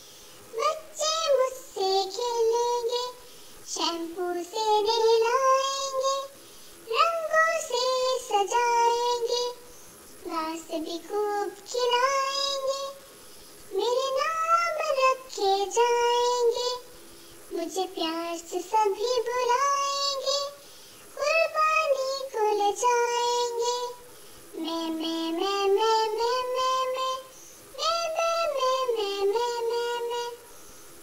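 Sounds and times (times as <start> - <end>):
child singing: 0.0 - 13.1, 13.7 - 16.9, 17.5 - 30.6.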